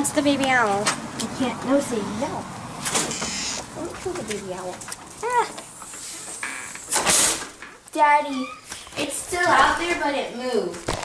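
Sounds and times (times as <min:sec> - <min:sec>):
door opening and shutting: 0:02.8 - 0:03.7, 0:06.4 - 0:07.6.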